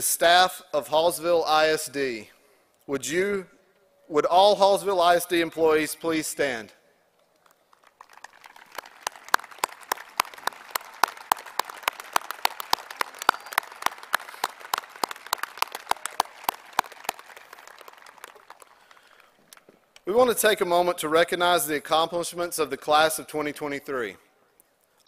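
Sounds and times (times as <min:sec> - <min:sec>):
close hand claps: 0:07.4 - 0:19.7
crowd applause: 0:07.7 - 0:19.7.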